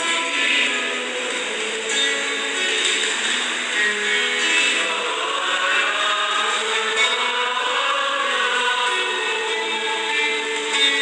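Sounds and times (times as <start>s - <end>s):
church psalm music: 0.0s - 11.0s.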